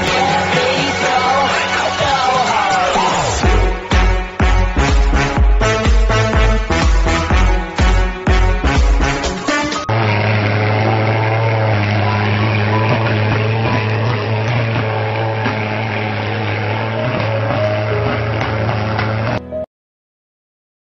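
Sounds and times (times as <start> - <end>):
pulse-jet fogger engine droning: 0.0 - 19.5
dance music: 0.0 - 19.7.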